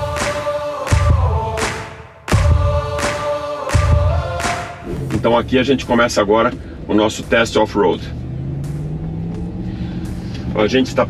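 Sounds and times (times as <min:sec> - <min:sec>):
steady rising hum: 0:03.6 - 0:11.0.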